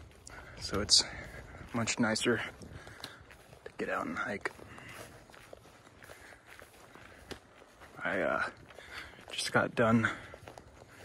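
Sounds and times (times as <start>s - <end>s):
footsteps on forest trail: 0.0s - 11.0s.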